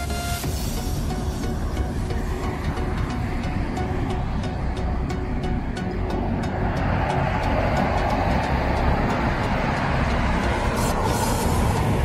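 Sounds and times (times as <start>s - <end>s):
passing vehicle tyres and engine: 0.0s - 12.0s.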